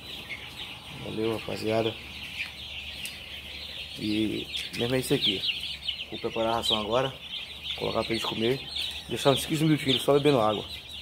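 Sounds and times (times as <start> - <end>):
chicks peeping: 0.0 - 11.0.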